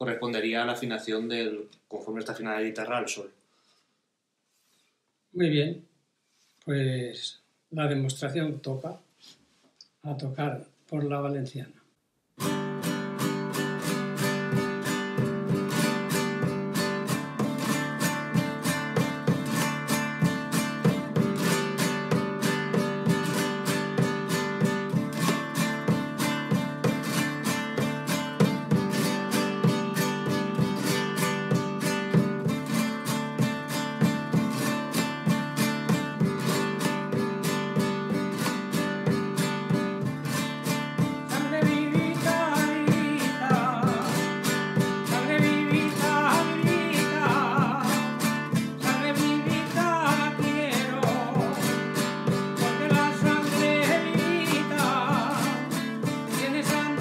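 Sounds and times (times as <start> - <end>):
acoustic guitar strummed fast: 12.4 - 57.0.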